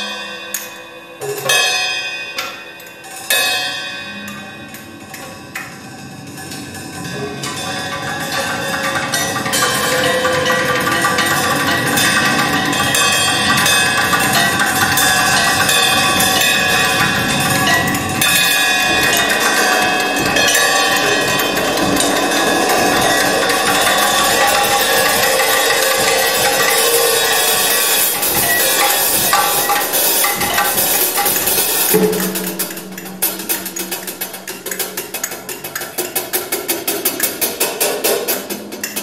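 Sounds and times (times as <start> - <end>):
struck percussion: 3.2 - 39.0
ringing metallic tones: 6.2 - 36.5.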